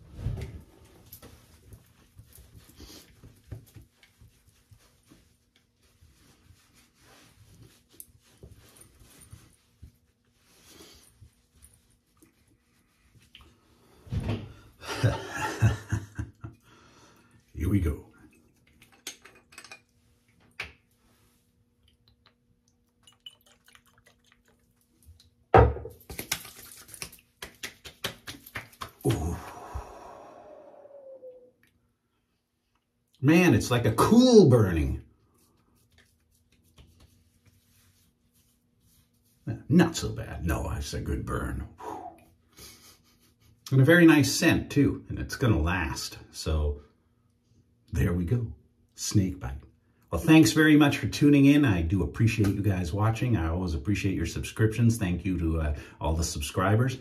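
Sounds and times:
towel rubbing against skin: 0.0s - 13.8s, 34.4s - 40.1s
man breathing out through lips: 29.3s - 30.9s.

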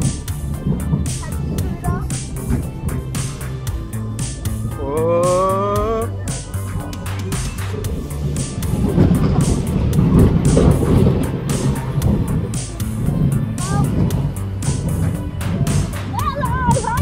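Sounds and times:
fairground music with steady beat: 0.0s - 17.0s
roller coaster cars rumbling: 0.0s - 17.0s.

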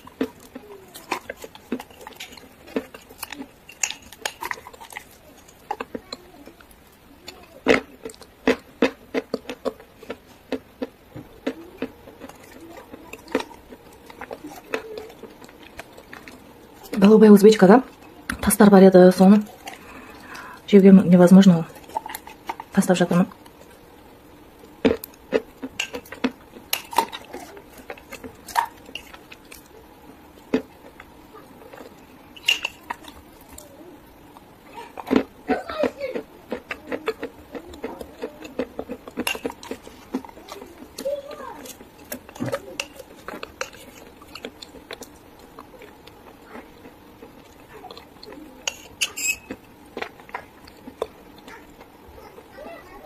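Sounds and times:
crunchy chewing: 0.0s - 53.0s.

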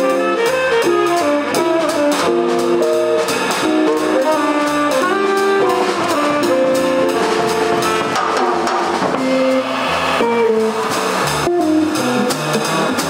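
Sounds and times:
saxophone: 0.0s - 8.2s
electric guitar: 0.0s - 13.0s
upright bass: 0.0s - 13.0s.

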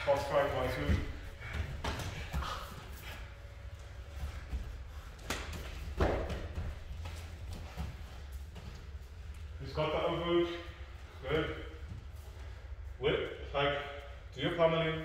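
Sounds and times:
low steady hum: 0.0s - 15.0s
bodies scuffing and thudding on mats: 4.3s - 9.0s.

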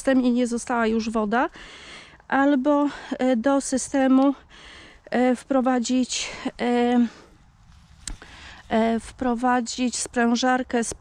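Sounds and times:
woman talking: 0.0s - 1.6s, 2.3s - 7.3s, 8.6s - 11.0s.

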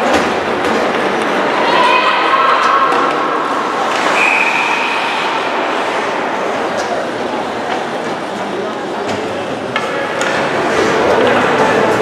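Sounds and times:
crowd noise in arena: 0.0s - 12.0s
referee's whistle blowing: 4.2s - 5.1s.

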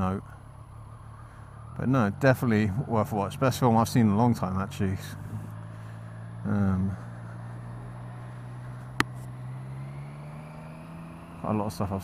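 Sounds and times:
motorcycle engine cruising: 0.0s - 12.0s.

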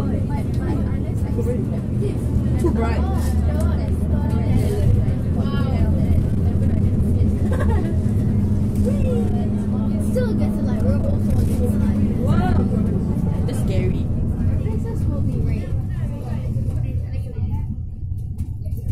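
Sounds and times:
bus engine drone: 0.0s - 18.9s
indistinct voices: 0.0s - 18.9s.

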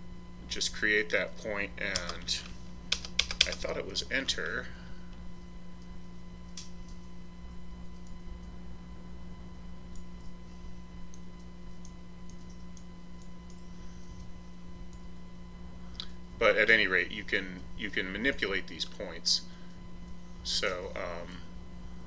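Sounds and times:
steady electrical hum: 0.0s - 22.0s.

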